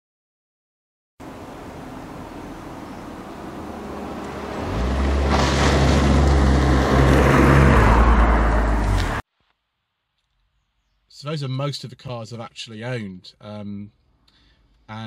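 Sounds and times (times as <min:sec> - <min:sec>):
car driving past: 0:01.2 - 0:09.2.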